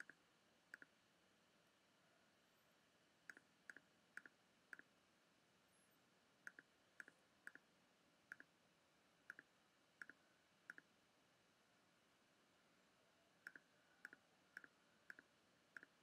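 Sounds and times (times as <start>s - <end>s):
faint computer mouse clicks: 3.3s - 4.9s, 6.5s - 7.6s, 8.3s - 8.5s, 9.3s - 10.9s, 13.4s - 16.0s.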